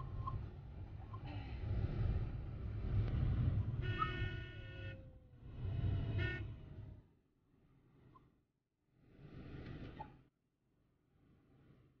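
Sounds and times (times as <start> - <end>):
vehicle horn: 3.8 - 5.2, 6.1 - 6.5.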